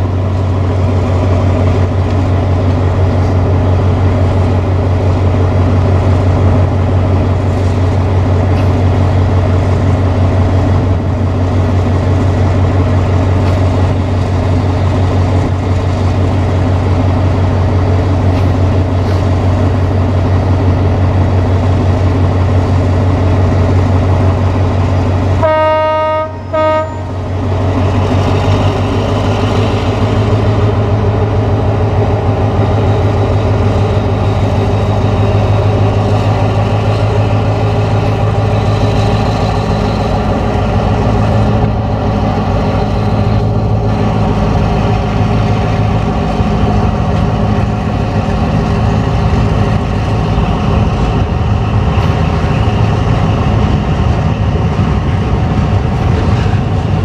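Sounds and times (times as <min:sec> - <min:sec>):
locomotive engine drone: 0:00.0 - 0:57.0
train horn blasts: 0:25.4 - 0:27.2.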